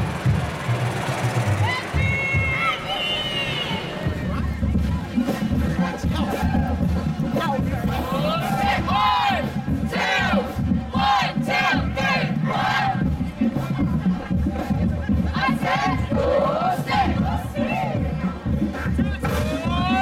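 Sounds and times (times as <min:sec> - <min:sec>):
steady low rumble: 0:00.0 - 0:02.9
crowd shouting and yelling: 0:00.0 - 0:20.0.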